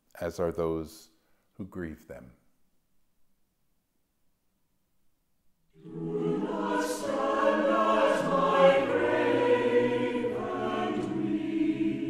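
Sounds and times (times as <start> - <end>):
choir singing sustained chords: 5.7 - 12.0.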